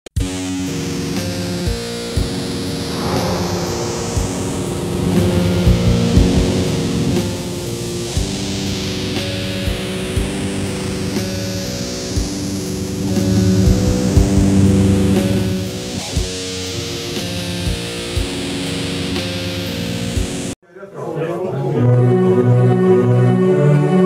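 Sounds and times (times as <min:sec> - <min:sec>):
sweeping hiss: 0:02.7 - 0:09.5, 0:11.5 - 0:16.7
held guitar chords: 0:02.8 - 0:17.1
low drum hits: 0:02.9 - 0:08.0.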